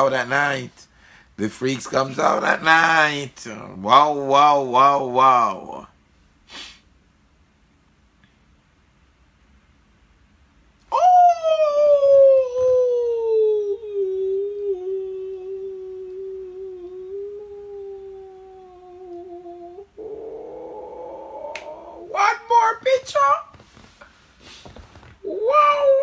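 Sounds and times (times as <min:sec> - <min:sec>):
man howling: 0:10.9 - 0:23.3, 0:25.2 - 0:26.0.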